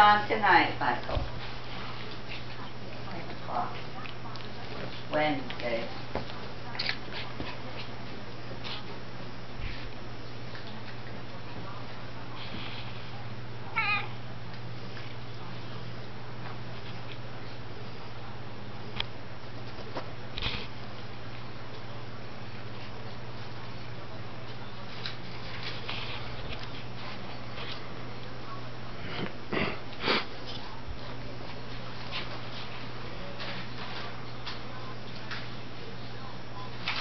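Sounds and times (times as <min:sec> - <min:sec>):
cat meowing: 0:13.7 - 0:14.1
dogs playing with rope toy: 0:22.7 - 0:28.0.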